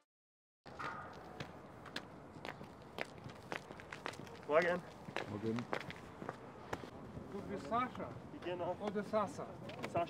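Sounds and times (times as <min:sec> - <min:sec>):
footsteps on gritty path: 0:00.7 - 0:07.0.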